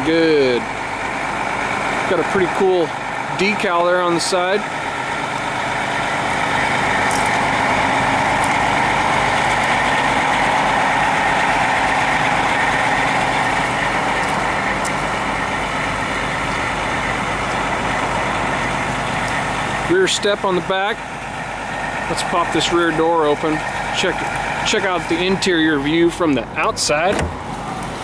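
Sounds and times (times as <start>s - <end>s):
diesel bus engine idling: 0.0s - 28.0s.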